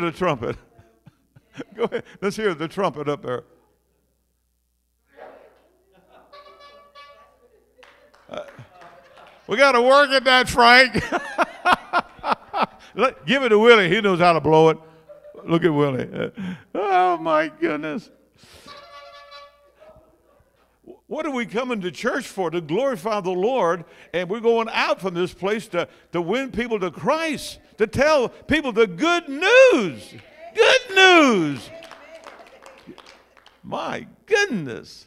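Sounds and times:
horn blown weakly: 6.3 - 7.4, 18.5 - 19.8.

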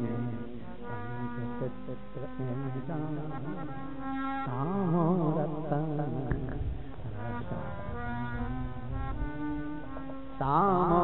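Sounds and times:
person singing: 0.0 - 11.0
harmonium playing reedy notes: 2.8 - 5.0, 7.0 - 11.0.

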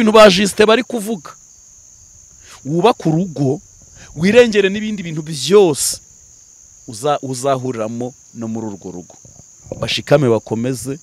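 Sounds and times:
man speaking: 0.0 - 1.4, 2.5 - 6.0, 6.9 - 11.0
crickets trilling: 0.0 - 11.0.

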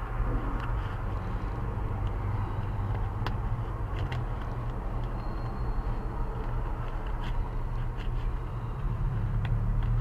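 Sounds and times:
car engine rumbling: 0.0 - 10.0.

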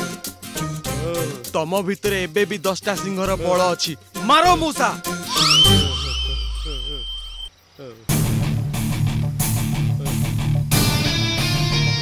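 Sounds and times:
low drone: 5.3 - 7.5
swooping sliding sound effects: 5.3 - 7.5
loud rock music with electric guitar: 8.2 - 12.0.

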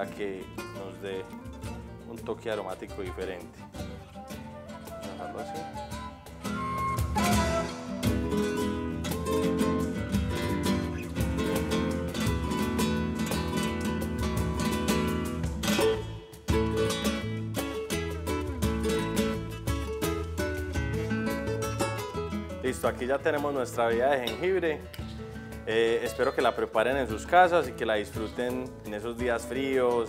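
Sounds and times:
acoustic guitar music: 0.0 - 30.0.

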